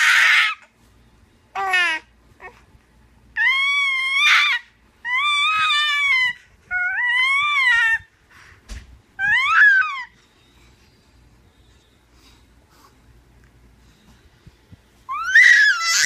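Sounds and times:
baby squealing: 3.4 - 8.0, 9.2 - 10.2, 15.1 - 16.0.

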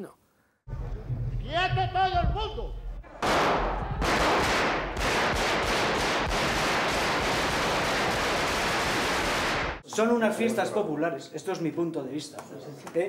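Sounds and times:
automatic gunfire in large hall: 3.2 - 9.8.

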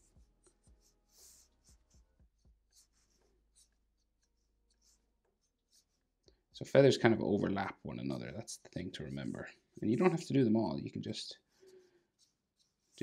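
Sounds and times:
marker strokes on paper: 0.0 - 13.0.

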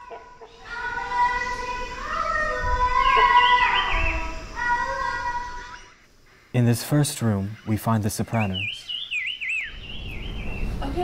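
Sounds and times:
a cappella singing: 0.0 - 5.9.

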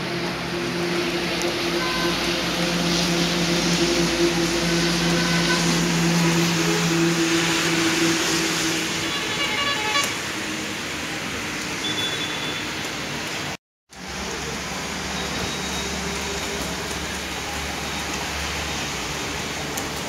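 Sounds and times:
heavy rain pouring: 0.0 - 20.0
short high beeps: 11.8 - 12.6.

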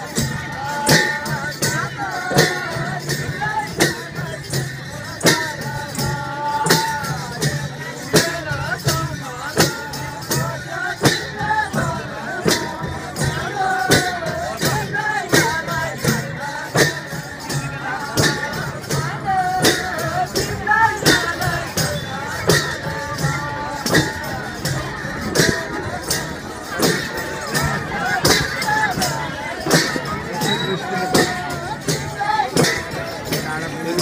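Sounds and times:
group singing: 0.0 - 34.0
hand drums and percussion: 0.0 - 34.0.

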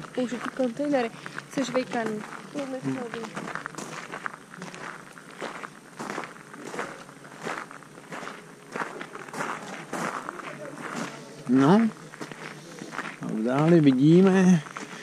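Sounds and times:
footsteps crunching on gravel: 0.0 - 15.0.

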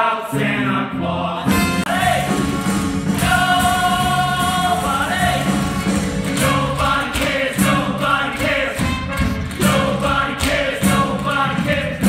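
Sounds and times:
ensemble singing: 0.0 - 8.9
instrumental accompaniment: 0.4 - 12.0.

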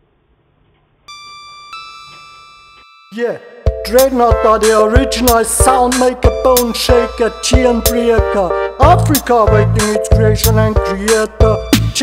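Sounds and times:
ringing bell-like keyboard notes: 1.1 - 4.0
reggae backing track: 3.7 - 12.0.

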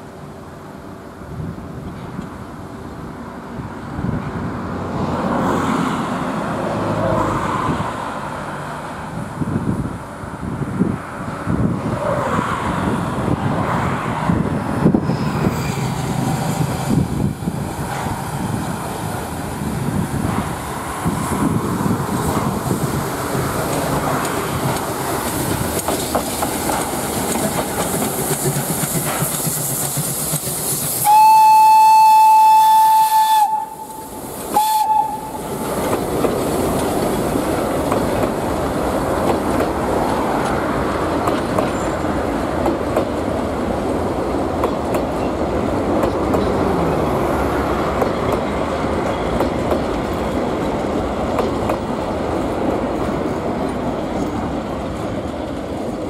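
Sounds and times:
train coaches rolling on rails: 0.0 - 56.0
steam whistle blasts: 31.0 - 35.4.

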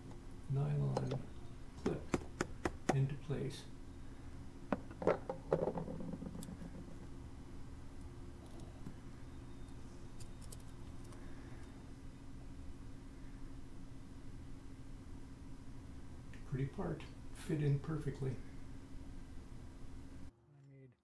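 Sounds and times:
steady low hum: 0.0 - 21.0.

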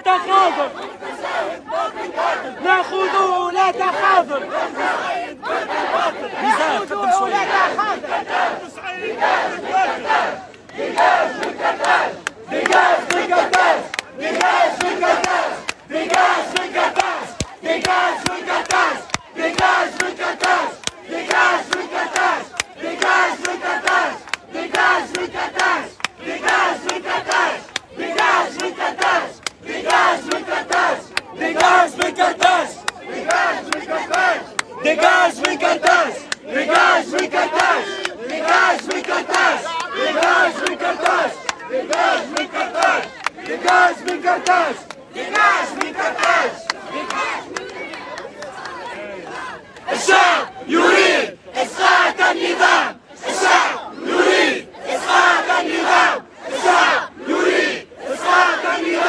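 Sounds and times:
crowd chanting slogans: 0.0 - 59.0.

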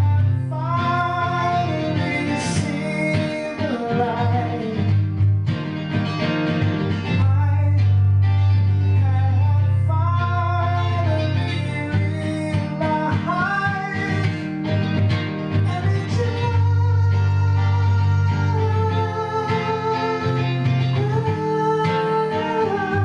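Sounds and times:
guitar: 0.0 - 23.0.

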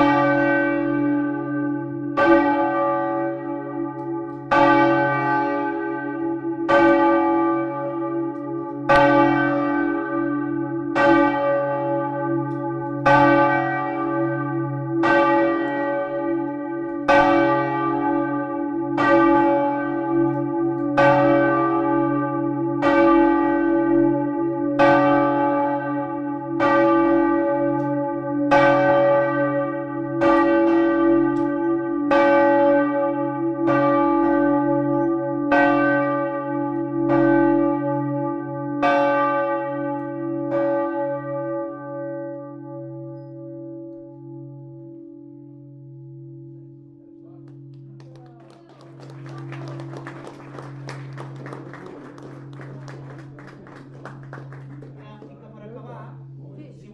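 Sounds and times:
large church bells ringing: 0.0 - 56.9.

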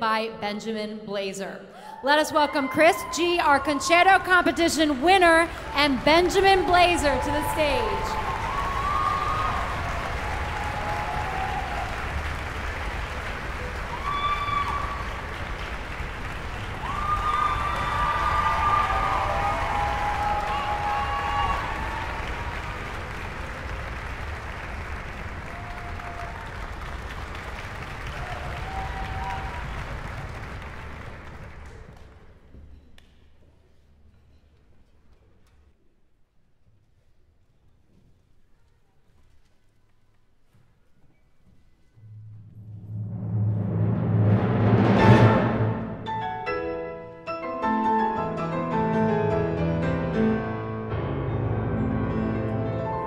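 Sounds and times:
audience applauding: 4.3 - 32.4.

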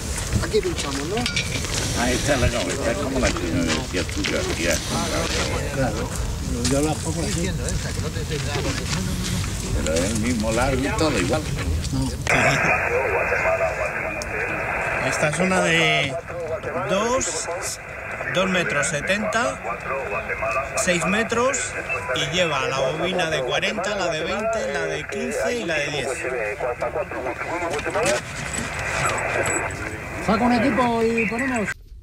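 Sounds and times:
faint radio voices: 0.0 - 31.8
radio static hiss: 0.0 - 31.8
steady background noise: 0.0 - 31.8
man talking: 0.4 - 9.0, 9.7 - 28.2.

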